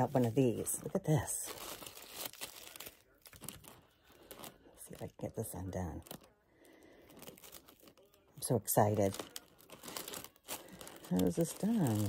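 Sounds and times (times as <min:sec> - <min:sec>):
fabric bag rustling: 0:00.0 - 0:05.2, 0:07.1 - 0:12.0.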